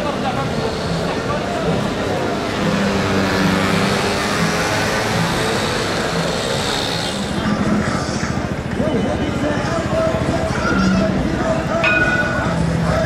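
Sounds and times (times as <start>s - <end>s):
street traffic drone: 0.0s - 13.0s.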